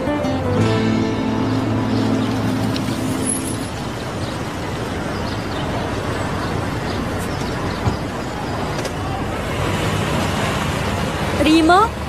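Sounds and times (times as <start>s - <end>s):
background music: 0.0s - 4.0s
street traffic hiss: 0.4s - 12.0s.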